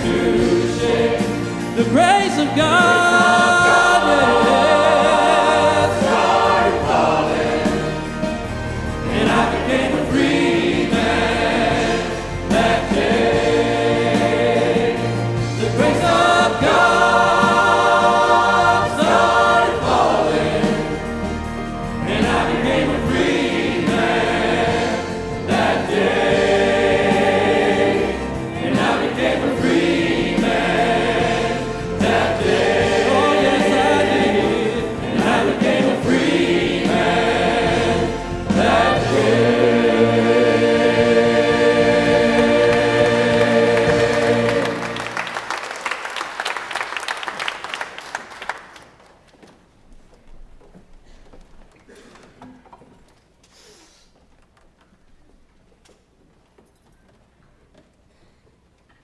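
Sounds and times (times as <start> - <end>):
keyboard accompaniment: 0.0 - 45.6
choir singing gospel song: 0.0 - 46.6.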